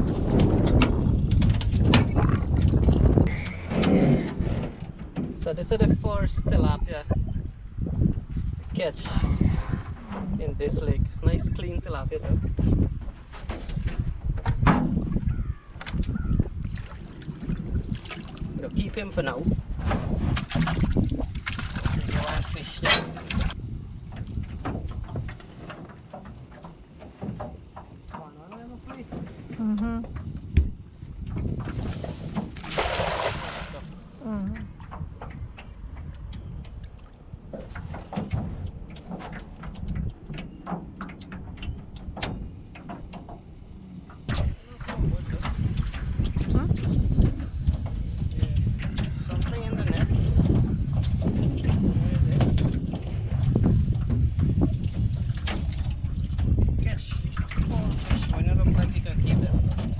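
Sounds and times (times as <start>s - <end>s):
knocks and clatter in boat: 0.0s - 59.9s
wind buffeting microphone: 0.0s - 59.9s.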